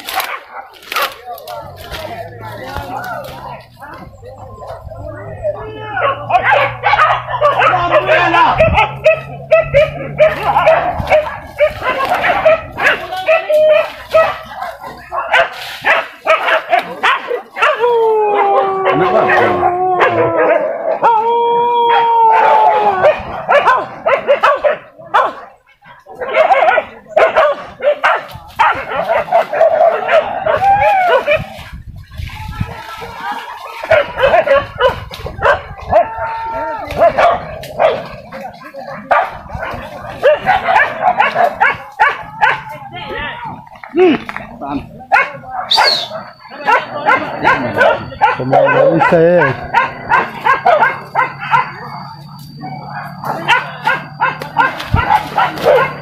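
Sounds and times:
dogs barking and yelping: 0:00.0 - 0:56.0
dogs long drawn-out cries: 0:05.5 - 0:25.4, 0:26.2 - 0:31.6, 0:33.0 - 0:43.6, 0:45.1 - 0:56.0.

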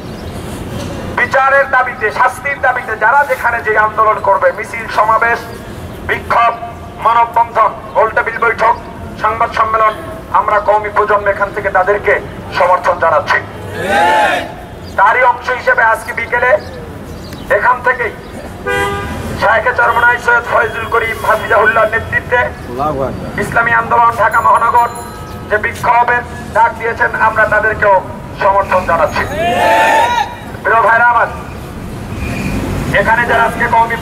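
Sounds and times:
man speaking through a megaphone: 0:01.2 - 0:31.6, 0:32.9 - 0:34.0
vehicle horn: 0:18.6 - 0:21.8.

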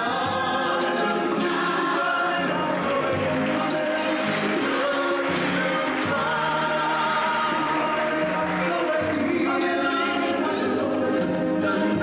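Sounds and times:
choir singing: 0:00.0 - 0:12.0
musical accompaniment: 0:00.0 - 0:12.0.

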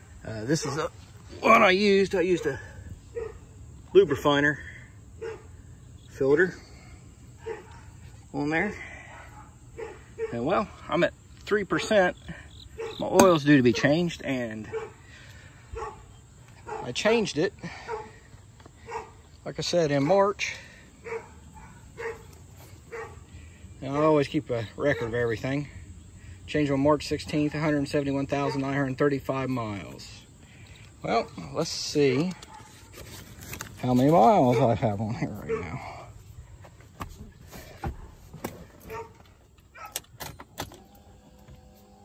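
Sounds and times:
dog barking: 0:02.4 - 0:03.5, 0:05.2 - 0:05.6, 0:07.4 - 0:08.0, 0:09.0 - 0:10.6, 0:12.8 - 0:14.0, 0:14.6 - 0:15.0, 0:15.7 - 0:17.0, 0:17.7 - 0:18.2, 0:18.8 - 0:19.2, 0:21.0 - 0:22.3, 0:22.9 - 0:23.3, 0:28.4 - 0:28.7, 0:34.5 - 0:34.8, 0:35.4 - 0:36.0, 0:38.9 - 0:40.0.

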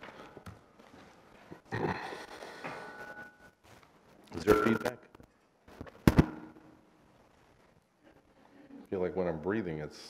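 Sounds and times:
microphone pops ringing: 0:04.4 - 0:05.0.

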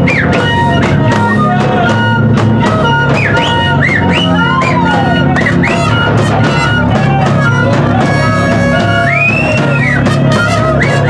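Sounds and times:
curved horn playing: 0:00.0 - 0:11.0
live band drone: 0:00.0 - 0:11.0
wailing pitch slides: 0:00.0 - 0:11.0
wooden flute playing: 0:00.0 - 0:11.0.

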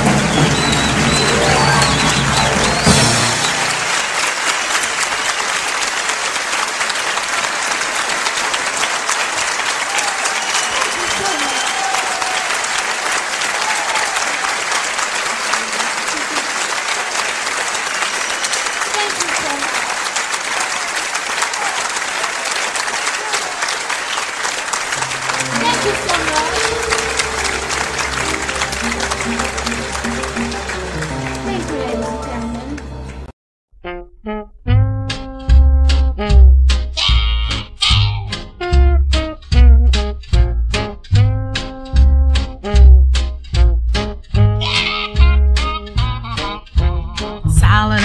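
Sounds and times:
band playing: 0:00.0 - 0:04.8, 0:24.9 - 0:33.3, 0:33.9 - 0:37.6, 0:38.3 - 0:48.0
audience applauding: 0:00.0 - 0:33.3.

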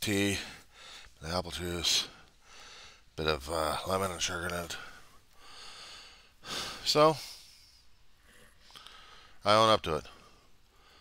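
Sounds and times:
man speaking: 0:00.0 - 0:00.6, 0:01.2 - 0:02.2, 0:03.2 - 0:05.0, 0:06.8 - 0:07.5, 0:09.4 - 0:10.2
man breathing: 0:00.4 - 0:01.2, 0:02.0 - 0:03.2, 0:04.7 - 0:09.4, 0:10.1 - 0:11.0.

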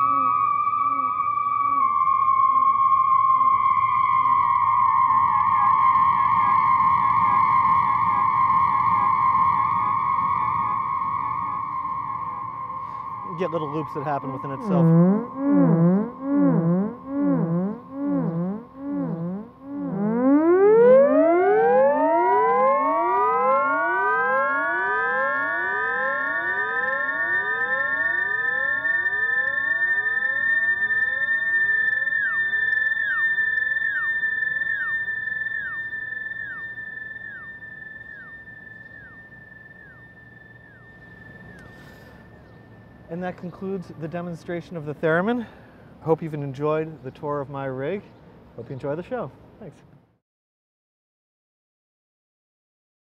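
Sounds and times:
theremin with echoing delay: 0:00.0 - 0:45.7.

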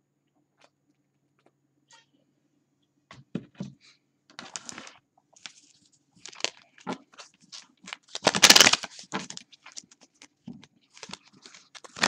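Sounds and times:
card-on-card rustling: 0:04.4 - 0:12.0
cards shuffling: 0:06.3 - 0:10.3.

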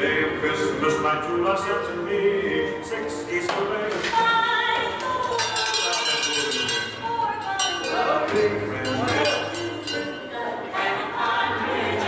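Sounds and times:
metallic clinking strikes: 0:04.5 - 0:10.6.

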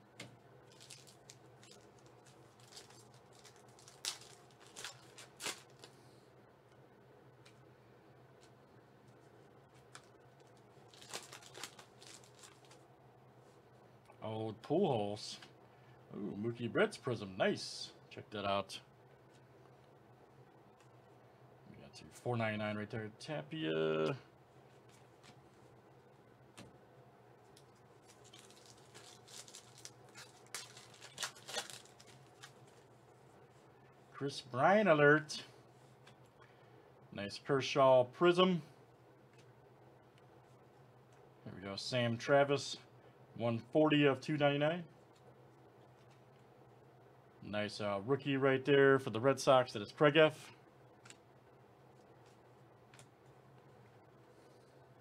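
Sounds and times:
faint steady hum: 0:00.0 - 0:55.0
foil wrapper crinkling: 0:00.6 - 0:06.0, 0:09.7 - 0:12.8, 0:27.5 - 0:33.0
trading cards rustling: 0:00.7 - 0:06.0, 0:09.7 - 0:12.8, 0:27.5 - 0:33.1.

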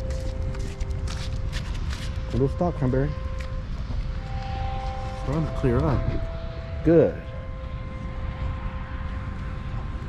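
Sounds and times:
background music held note: 0:00.0 - 0:10.0
steady low rumble: 0:00.0 - 0:10.0.

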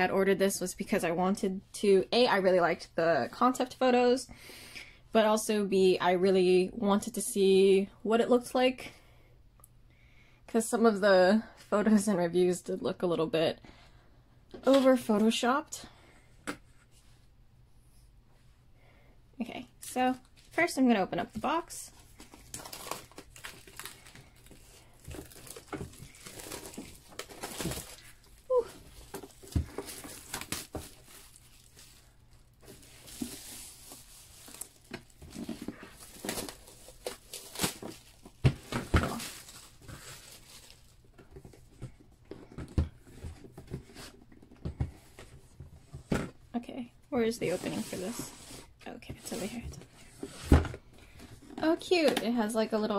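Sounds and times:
plastic shrink-wrap crinkling: 0:22.2 - 0:41.2.

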